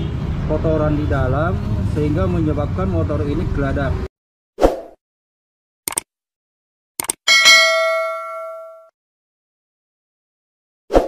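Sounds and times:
quick clicks: 5.9 - 6.1, 7.0 - 7.2
bell-like notification ding: 7.3 - 8.9.

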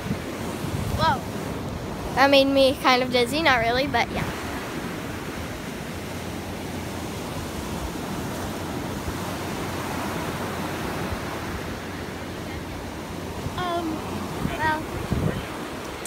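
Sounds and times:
ocean surf breaking on beach: 0.0 - 16.0.

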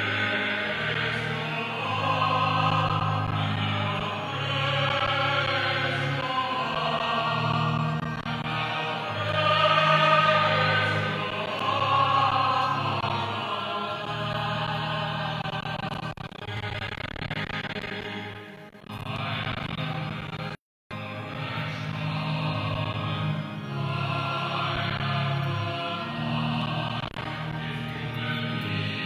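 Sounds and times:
choir singing a hymn: 0.0 - 16.2, 19.0 - 20.0, 21.1 - 29.0.

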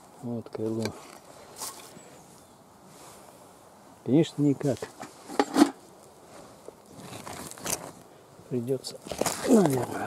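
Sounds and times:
earth rustling: 0.0 - 10.0
digging scrapes in stony soil: 4.9 - 8.0, 8.9 - 10.0.

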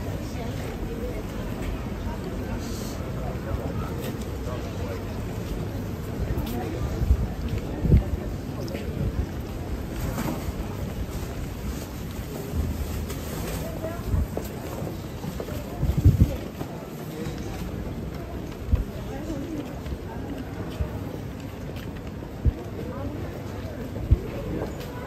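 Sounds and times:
passers-by talking indistinctly: 0.0 - 25.0
wind rumble on microphone: 6.0 - 16.6, 23.9 - 24.8.

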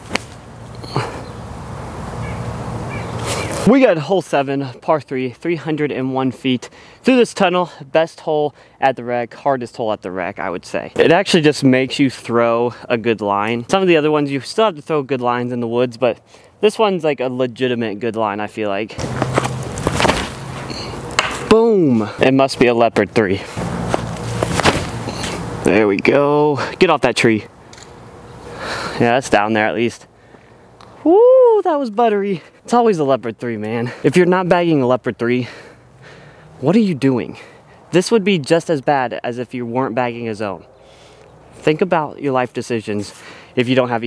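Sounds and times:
rustling dry leaves: 0.0 - 3.7, 19.0 - 22.1
low outdoor rush: 0.0 - 44.0
faint bird chirps: 0.7 - 1.5, 20.7 - 21.0
footsteps and shoe scuffs: 2.3 - 3.7, 19.0 - 22.1, 23.5 - 25.6.

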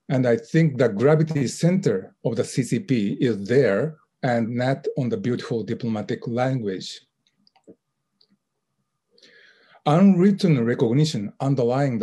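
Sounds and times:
man speaking: 0.0 - 7.0, 9.9 - 12.0.

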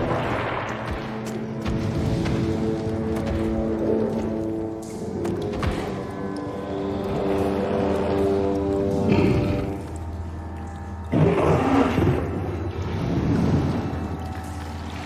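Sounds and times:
ominous film score: 0.0 - 15.0.

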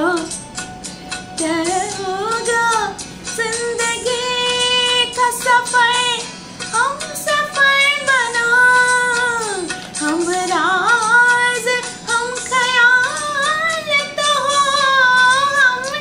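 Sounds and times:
woman singing: 0.0 - 0.4, 1.4 - 16.0.

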